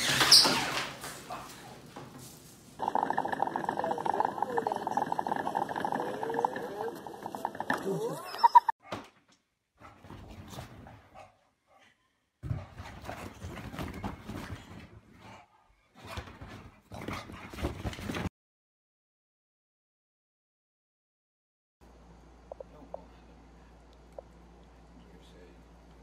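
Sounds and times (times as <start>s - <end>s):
dog whining: 7.8s - 8.7s.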